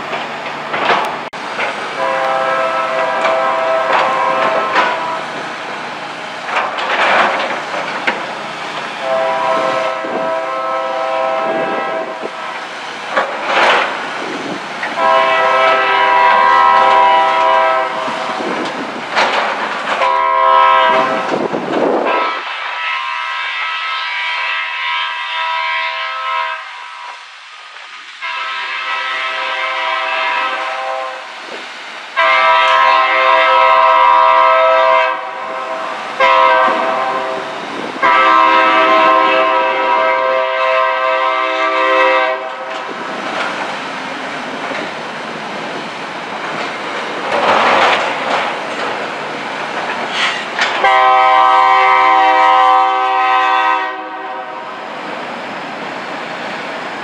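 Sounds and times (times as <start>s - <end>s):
locomotive air horn blasts: 2.0s - 5.4s, 9.0s - 12.6s, 14.9s - 18.6s, 19.9s - 27.4s, 28.1s - 31.3s, 32.2s - 42.9s, 50.2s - 54.9s.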